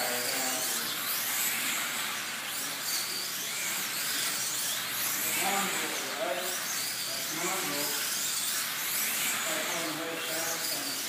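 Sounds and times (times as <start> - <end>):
slot car motors whining: 0.0 - 11.0.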